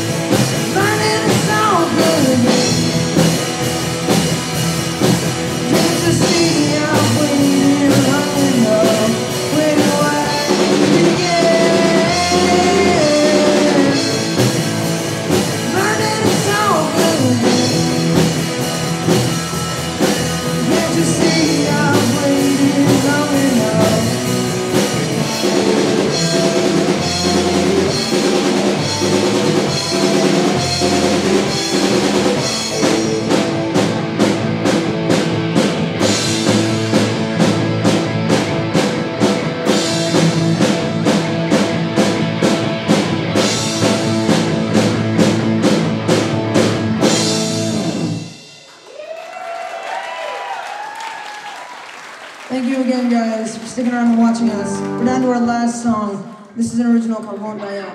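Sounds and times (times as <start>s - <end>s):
person singing lead vocal: 0.0s - 3.3s, 5.5s - 14.6s, 15.6s - 18.3s, 20.4s - 31.7s
rock band playing: 0.0s - 57.9s.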